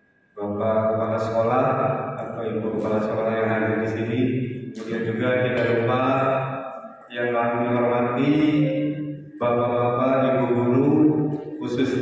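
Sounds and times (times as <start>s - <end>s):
man chanting over public address: 0.4s - 12.0s.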